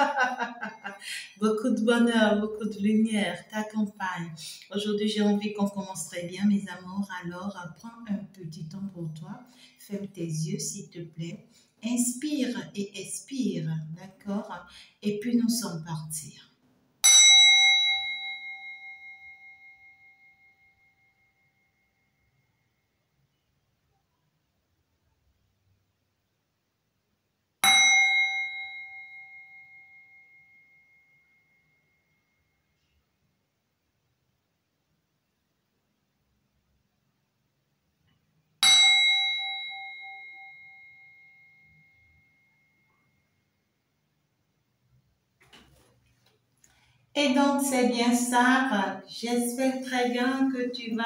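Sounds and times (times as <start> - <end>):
singing bowl ringing: 17.0 - 22.8, 27.6 - 32.8, 38.6 - 43.4.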